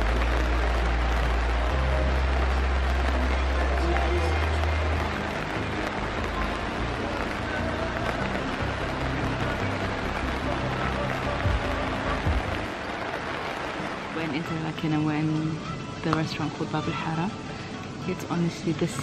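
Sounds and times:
background music with bass: 0:00.0 - 0:12.8
rain falling: 0:00.0 - 0:19.0.

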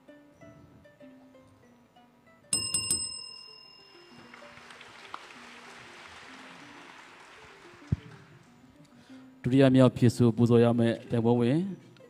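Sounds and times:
soft plucked music: 0:00.0 - 0:12.0
small bell ringing: 0:02.5 - 0:04.8.

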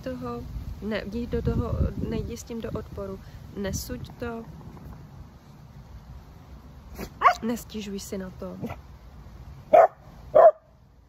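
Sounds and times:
dog barking: 0:07.0 - 0:07.4, 0:09.7 - 0:10.7.

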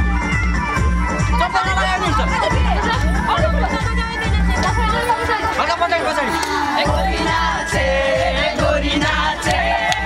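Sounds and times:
group of people chattering: 0:00.1 - 0:09.9
dance music beat: 0:00.2 - 0:10.0.

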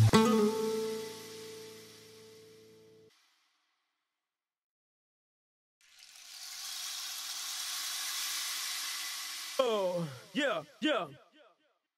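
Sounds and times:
electronic hiss noise: 0:00.0 - 0:03.6, 0:05.8 - 0:10.6
person shouting yeah: 0:09.6 - 0:11.2.

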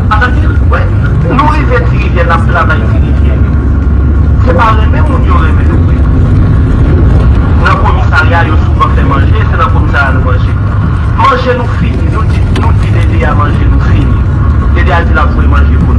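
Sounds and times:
loud low rumble: 0:00.0 - 0:15.9
person speaking: 0:07.5 - 0:15.9.

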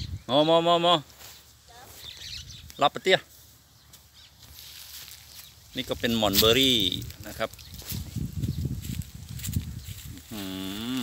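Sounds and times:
faint outdoor ambience: 0:00.0 - 0:11.0.

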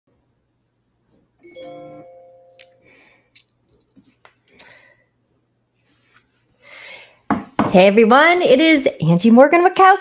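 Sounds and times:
ringing chime: 0:01.4 - 0:03.2.

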